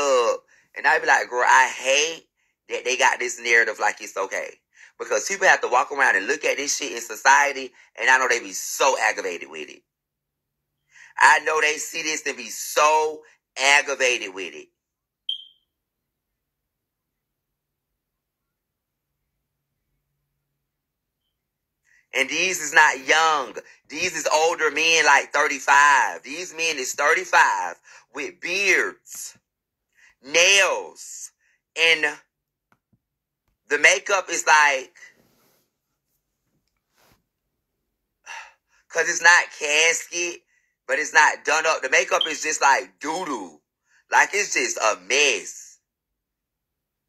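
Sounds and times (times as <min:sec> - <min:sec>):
short high electronic beep: 0:15.3 - 0:15.6.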